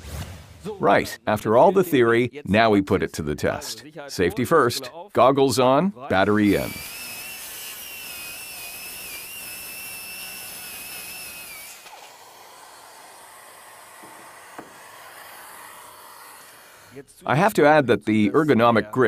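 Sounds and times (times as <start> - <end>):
circular saw cutting wood: 6.1 - 17.1
knock: 14.0 - 14.8.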